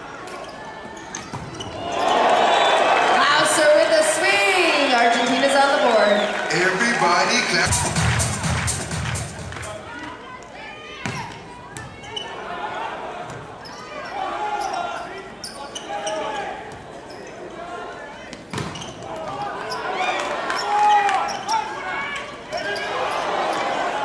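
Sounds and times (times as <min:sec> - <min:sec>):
players shouting calls: 0:01.8 - 0:07.8, 0:09.5 - 0:16.7.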